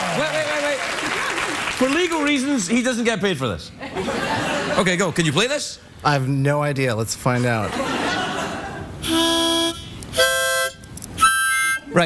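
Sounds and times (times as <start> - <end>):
harmonica chords: 9.0 - 12.0.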